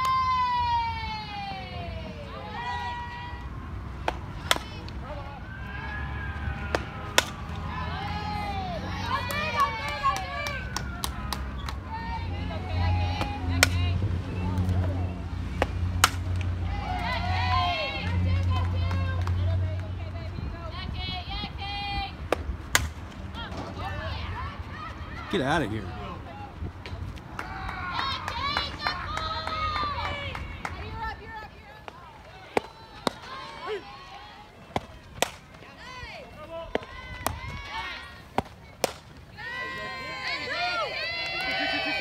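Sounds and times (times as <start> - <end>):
bat cracking against ball: 4.0 - 4.8, 6.6 - 7.5, 15.5 - 16.5, 22.3 - 23.1, 34.7 - 35.6, 38.3 - 39.2.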